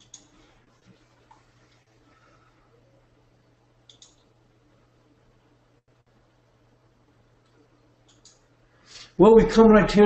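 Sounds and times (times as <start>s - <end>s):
computer mouse clicks: 0.0s - 0.4s, 3.8s - 4.3s, 7.4s - 8.5s
faint low hum: 0.0s - 10.0s.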